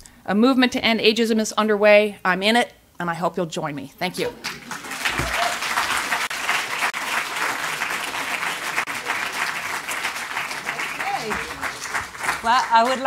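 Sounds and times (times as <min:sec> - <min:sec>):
audience applauding: 0:04.4 - 0:13.0.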